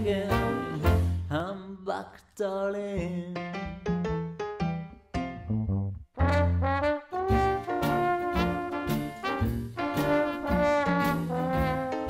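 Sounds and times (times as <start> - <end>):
swing jazz band accompaniment: 0.0 - 1.3, 6.2 - 12.0
trombone melody: 0.0 - 1.3, 6.2 - 12.0.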